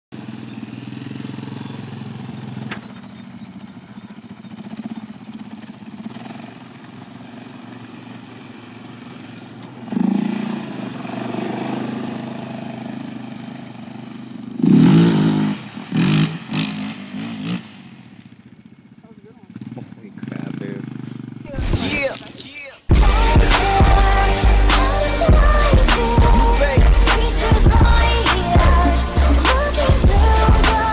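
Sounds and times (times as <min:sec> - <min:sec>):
quad engine revving: 0:00.1 - 0:18.3, 0:18.9 - 0:30.9.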